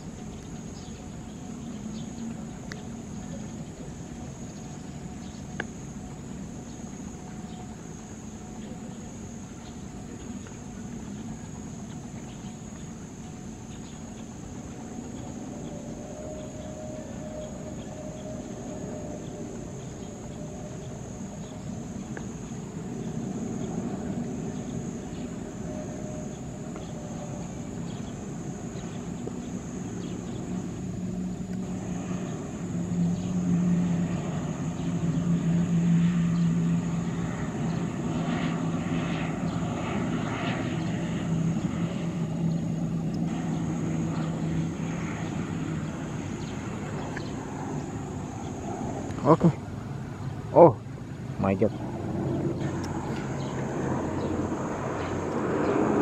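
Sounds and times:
turboprop engines droning: 0.0s - 56.0s.

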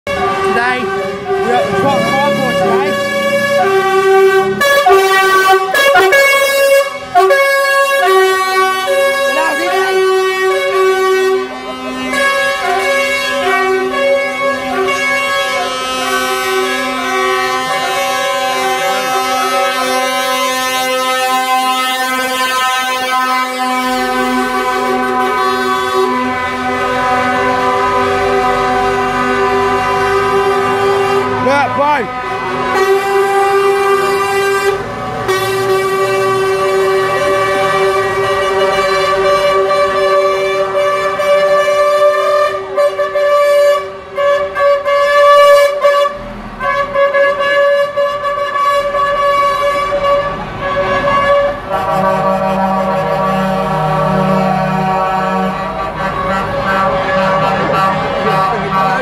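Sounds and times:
truck air horns: 0.1s - 59.0s.

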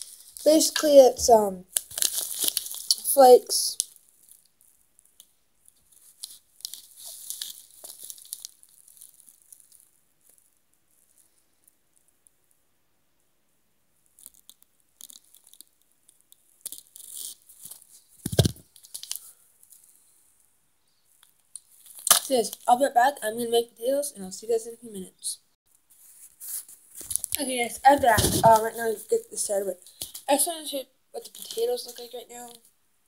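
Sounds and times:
package rustling and crinkling: 1.6s - 4.5s, 5.8s - 10.4s, 14.2s - 19.9s, 26.1s - 28.9s.

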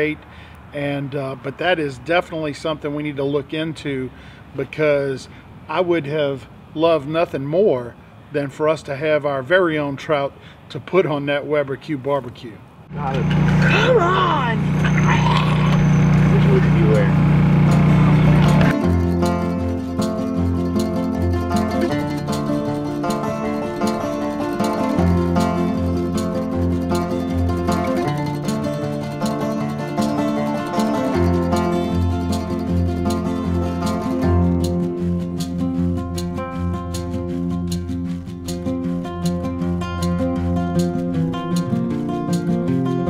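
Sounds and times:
loud low drone: 12.9s - 35.4s
music with plucked guitar: 13.0s - 43.0s
boy wailing: 13.6s - 15.8s.

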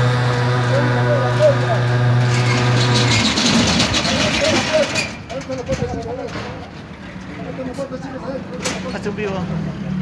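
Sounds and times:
people talking: 0.5s - 1.9s, 4.0s - 6.7s.

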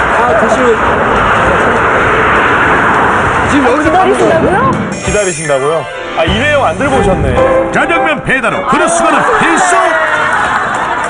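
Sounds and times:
road traffic passing close: 0.0s - 6.9s.

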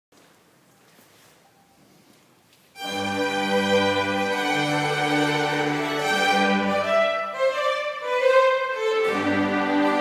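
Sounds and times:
cellos playing low part: 2.8s - 10.0s
violins playing bowed notes: 2.8s - 10.0s.

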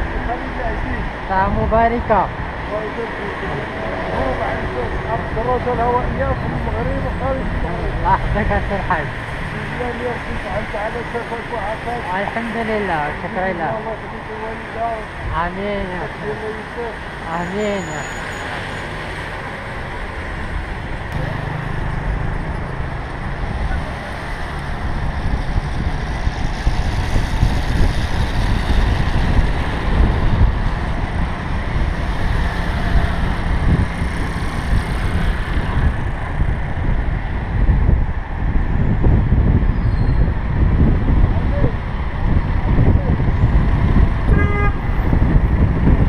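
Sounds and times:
wind rumbling on microphone: 0.0s - 17.8s, 19.0s - 46.0s
cars passing close by: 0.0s - 46.0s.

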